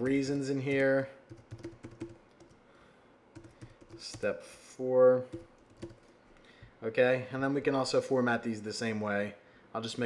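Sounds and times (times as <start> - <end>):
typing on computer keyboard: 0.8 - 2.6, 3.4 - 4.3, 5.3 - 6.1.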